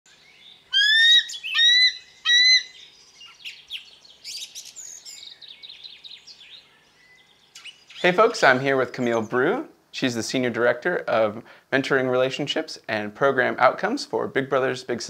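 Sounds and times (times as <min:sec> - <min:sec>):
loud whistled bird calls: 0:00.1 - 0:08.2
bird chirps and twitters: 0:00.1 - 0:09.5.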